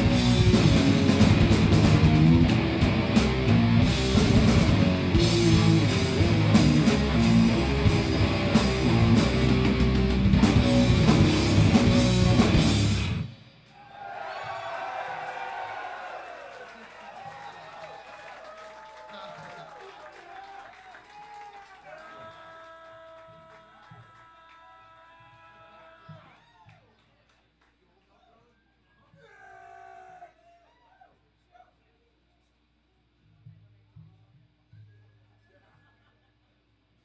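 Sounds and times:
heavy metal band playing live: 0.0s - 13.4s
crowd cheering and shouting: 13.7s - 26.8s.

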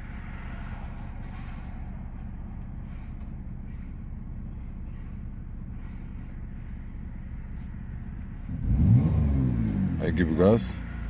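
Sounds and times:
car engine revving: 6.6s - 11.0s.

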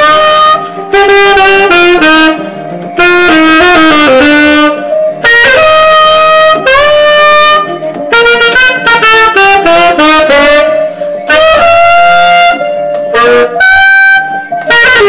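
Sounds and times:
saxophone playing jazz phrases: 0.0s - 15.0s.

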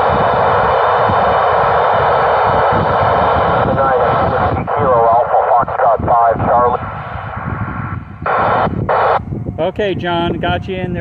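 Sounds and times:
radio hiss: 0.0s - 9.2s
garbled warbling radio voices: 3.3s - 9.2s.

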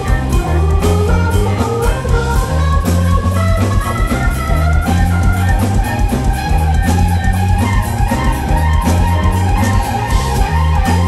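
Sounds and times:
heavy bass line: 0.0s - 11.0s
keyboards: 0.0s - 11.0s
live funk band playing: 0.0s - 11.0s
steady drum beat: 0.0s - 11.0s.

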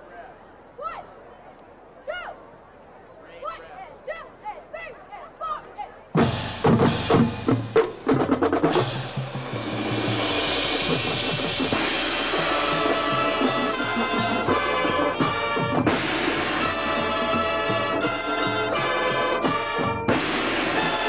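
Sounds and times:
drum line accented hits: 6.2s - 21.0s
marching band playing: 6.2s - 21.0s.

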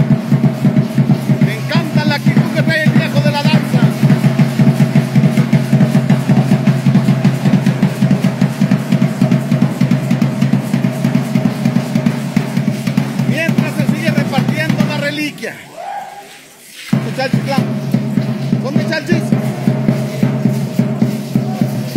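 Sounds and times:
drum beaten in fast rhythm: 0.0s - 15.9s, 16.5s - 21.9s.

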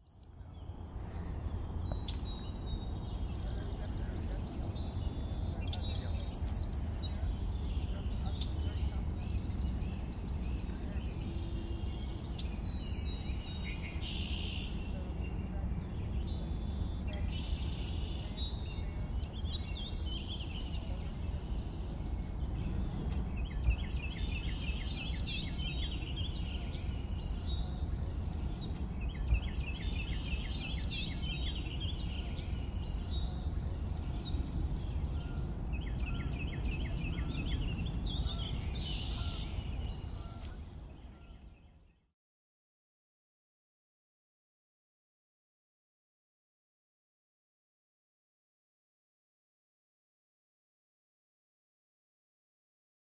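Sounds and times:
songbird trilling: 23.3s - 40.5s.

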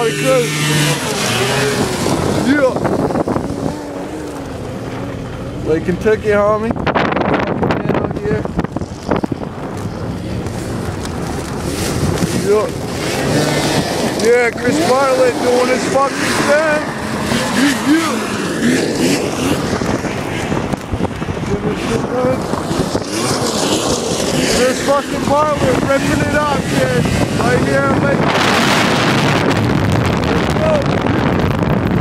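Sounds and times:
engine droning: 0.0s - 32.0s
wind buffeting microphone: 0.0s - 32.0s
man shouting: 30.5s - 31.0s.

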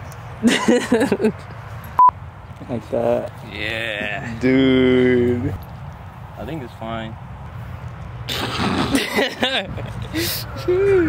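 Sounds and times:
young men talking: 2.5s - 8.3s, 9.1s - 11.0s.

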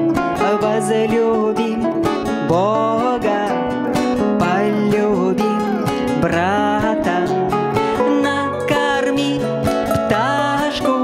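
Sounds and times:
acoustic guitars strummed and plucked: 0.0s - 11.0s
woman singing: 0.3s - 11.0s.

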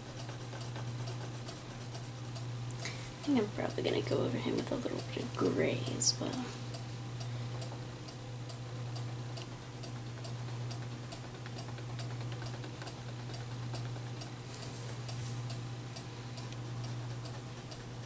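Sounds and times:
crayon strokes on paper: 0.0s - 2.3s
steady low hum: 0.0s - 18.0s.

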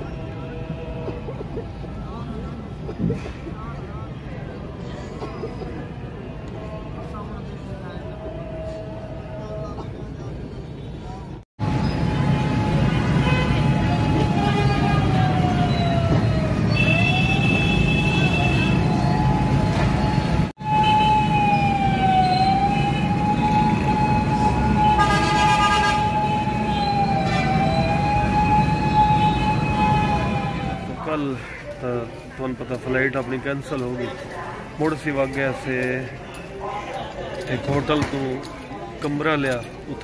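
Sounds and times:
heavy traffic rumbling: 0.0s - 40.0s
siren wailing: 11.6s - 17.7s, 18.4s - 31.1s.

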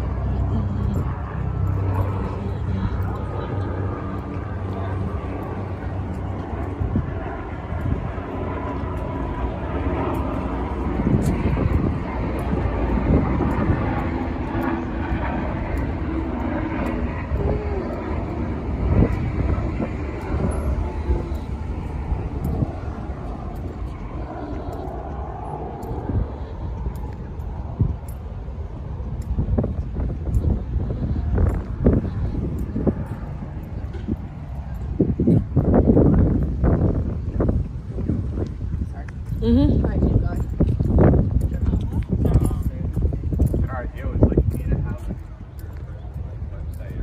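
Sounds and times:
traffic engine rumble: 0.0s - 47.0s.

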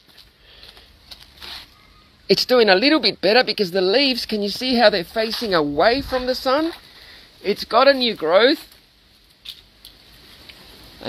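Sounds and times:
soft rustle: 0.0s - 2.1s, 4.5s - 7.3s
faint background hiss: 0.0s - 11.0s.

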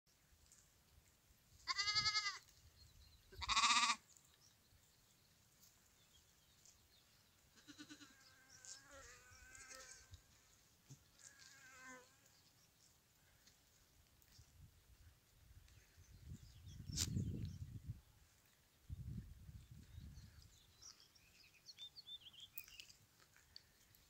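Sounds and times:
livestock bleating: 1.6s - 2.4s, 3.4s - 4.0s, 7.6s - 10.1s, 11.2s - 12.2s.

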